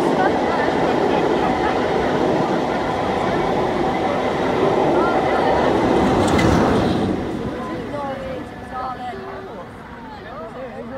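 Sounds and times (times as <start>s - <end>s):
train coaches rushing past: 0.0s - 10.1s.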